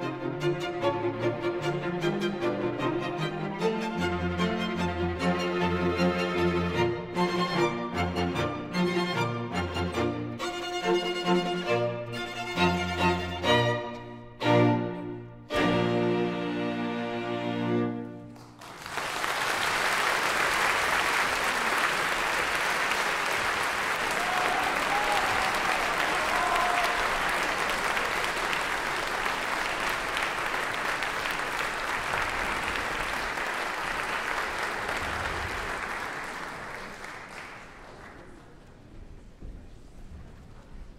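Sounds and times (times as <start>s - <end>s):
audience applauding: 18.2s - 38.9s.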